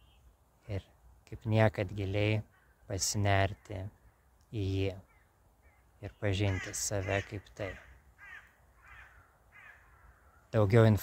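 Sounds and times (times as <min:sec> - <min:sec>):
bird cawing: 0:02.4 - 0:02.9, 0:05.0 - 0:10.6.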